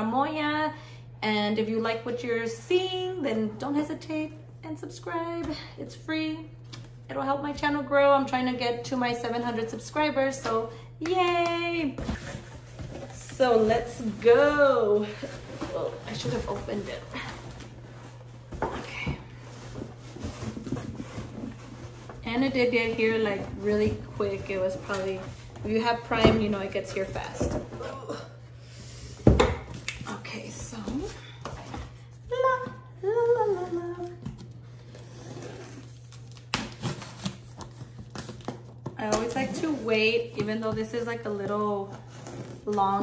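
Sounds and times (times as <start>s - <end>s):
cardboard crackling and tapping: 35.6s - 43.0s.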